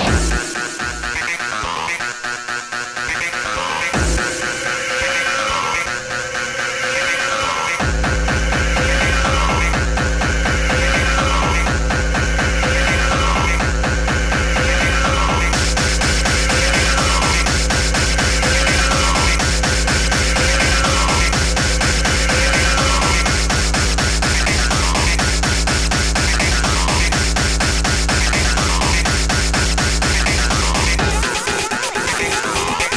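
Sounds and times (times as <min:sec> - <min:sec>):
fast distorted kick drum: 0:00.0 - 0:01.5, 0:03.9 - 0:05.9, 0:07.8 - 0:32.9.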